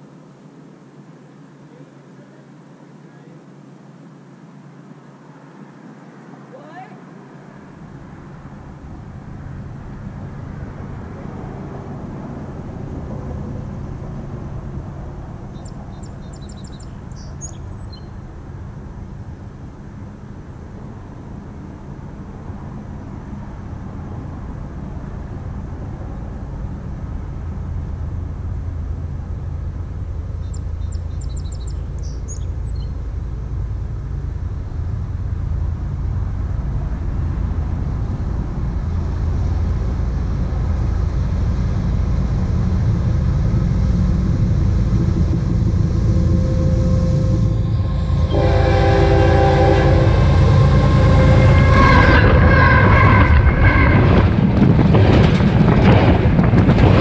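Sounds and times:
freight train rumbling: 0.0s - 57.0s
locomotive horn: 44.8s - 54.3s.

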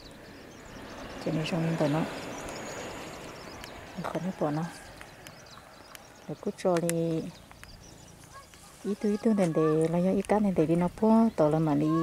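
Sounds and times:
outdoor background noise: 0.0s - 12.0s
person speaking: 8.3s - 12.0s.

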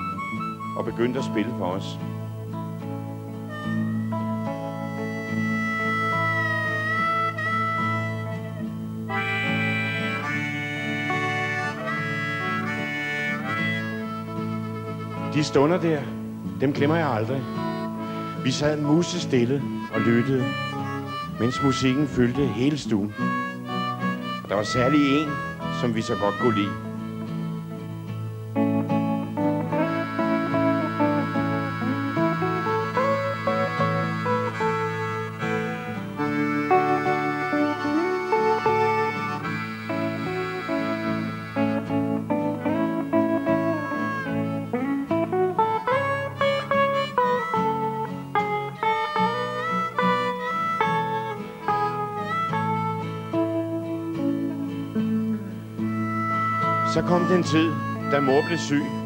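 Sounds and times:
electric guitar melody: 0.0s - 59.0s
low accompaniment: 0.0s - 59.0s.

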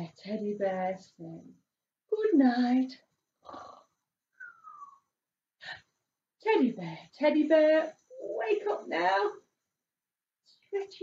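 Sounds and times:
woman pretend snoring: 3.4s - 3.9s
whistle on out-breath: 4.4s - 5.1s.

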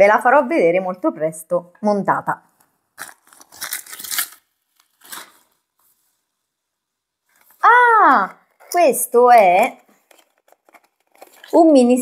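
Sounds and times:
packaging rustling: 3.0s - 6.2s, 9.8s - 11.8s.

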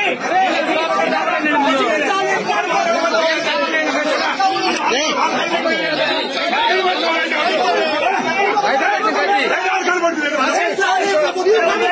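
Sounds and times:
people talking over one another: 0.0s - 11.9s.

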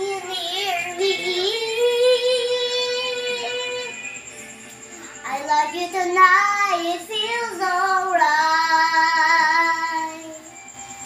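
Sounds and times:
girl singing a long note: 0.0s - 4.0s, 5.2s - 10.4s.

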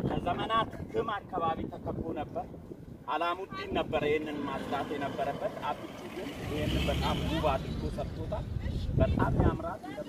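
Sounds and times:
man talking: 0.0s - 10.0s
car driving past: 4.2s - 8.8s.

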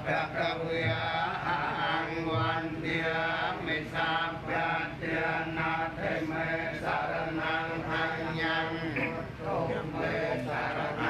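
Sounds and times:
group chanting prayers: 0.0s - 11.0s.

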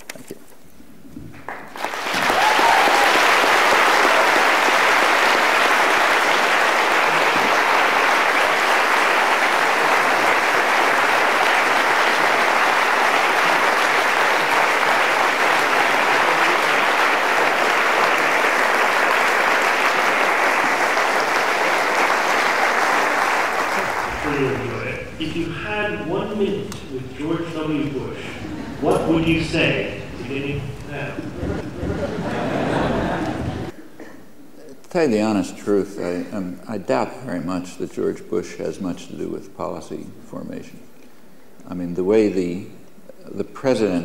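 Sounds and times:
large audience applauding: 1.5s - 25.2s, 30.8s - 33.8s.

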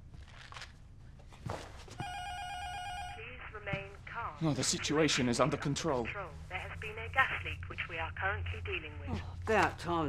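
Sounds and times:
electronic alert tone: 2.0s - 3.2s.

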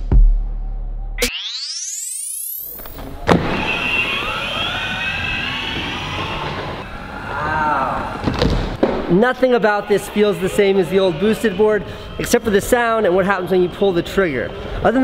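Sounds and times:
rising whoosh sound effect: 1.2s - 8.2s
electric motor whine: 1.3s - 7.5s
skateboard wheels rolling on wood: 3.3s - 9.0s.

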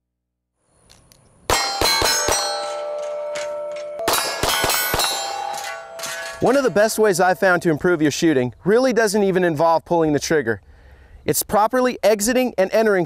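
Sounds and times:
ringing metallic clangs: 1.5s - 7.9s.

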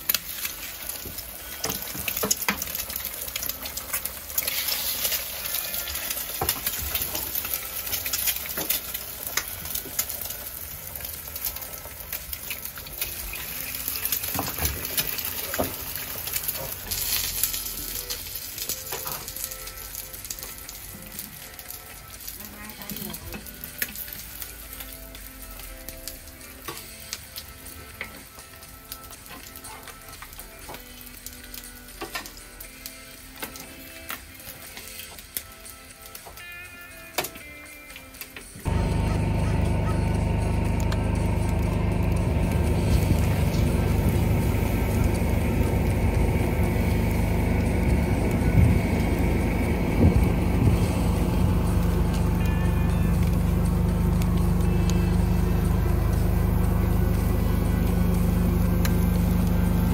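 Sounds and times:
eggs sizzling in oil: 0.0s - 59.9s.

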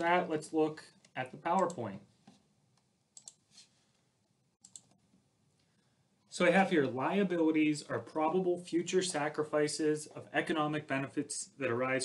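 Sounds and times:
computer mouse clicks: 1.0s - 3.5s, 4.6s - 5.0s.

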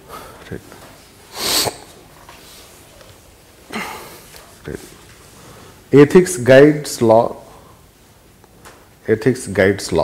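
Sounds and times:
man sneezing: 1.3s - 2.0s, 3.7s - 4.2s.

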